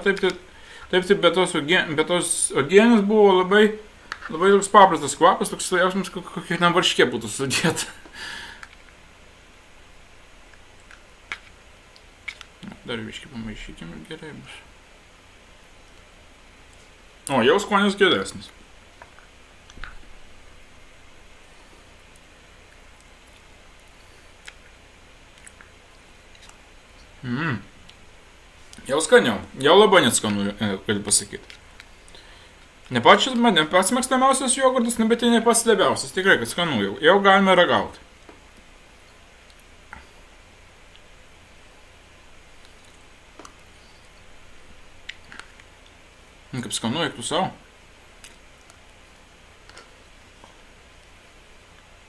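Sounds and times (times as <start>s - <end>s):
low room hum: 0.0s - 52.0s
spoon scooping yogurt: 12.2s - 12.5s.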